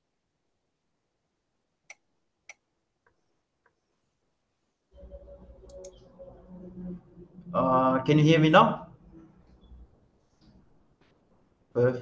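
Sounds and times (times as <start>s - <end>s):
steady hum with low drone: 5.0s - 10.0s.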